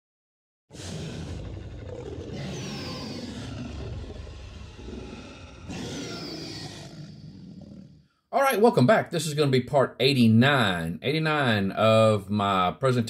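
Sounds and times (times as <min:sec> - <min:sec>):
dinosaur roar: 0:00.7 - 0:08.2.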